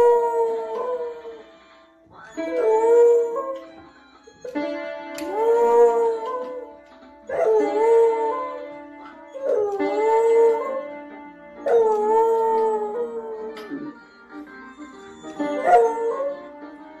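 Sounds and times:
piano notes: 0:02.4 - 0:17.0
dog howling: 0:15.3 - 0:16.4.

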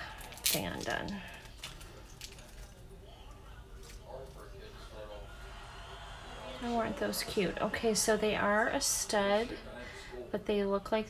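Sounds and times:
faint clicks and crinkles: 0:00.2 - 0:04.4.

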